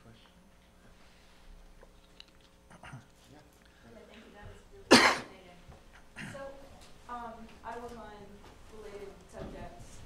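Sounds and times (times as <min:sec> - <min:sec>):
loud cough: 0:04.9 - 0:05.3.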